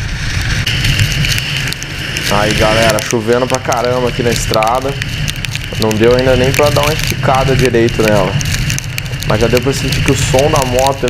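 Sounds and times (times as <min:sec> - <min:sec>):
motorcycle road rumble: 0:00.0 - 0:11.0
steady high hiss: 0:00.0 - 0:11.0
raindrops ticking on camera: 0:00.4 - 0:11.0.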